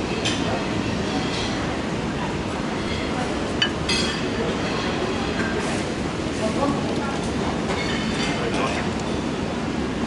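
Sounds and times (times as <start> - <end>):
low rumble of dining room: 0.0 - 10.0
utensils and dishes clinking: 3.6 - 5.7, 7.7 - 8.8.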